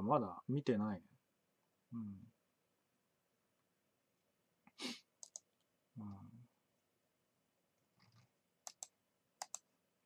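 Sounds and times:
computer mouse clicks: 5.2s - 5.7s, 7.9s - 9.7s.

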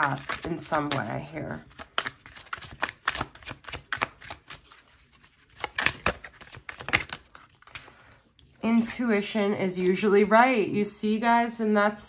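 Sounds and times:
cards being shuffled: 0.0s - 8.6s.

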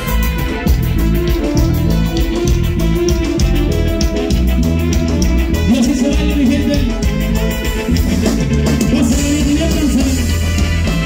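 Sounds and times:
drum kit: 0.0s - 11.0s
guitar: 0.0s - 11.0s.

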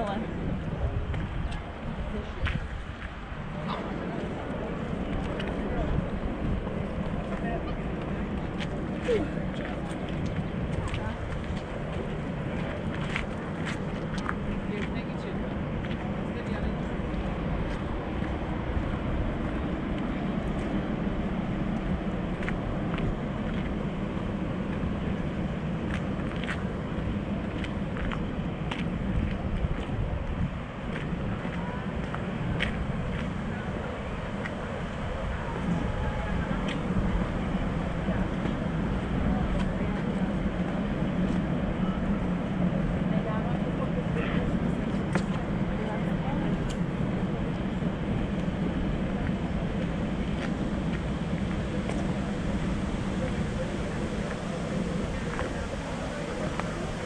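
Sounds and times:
people's voices: 0.0s - 57.0s
traffic noise: 0.0s - 57.0s.

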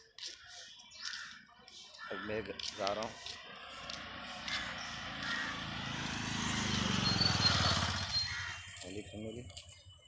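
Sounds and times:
small vehicle engine passing: 3.0s - 9.0s.

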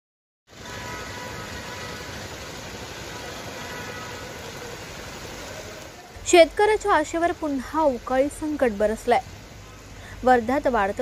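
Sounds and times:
heavy rain on wet street: 0.5s - 11.0s.

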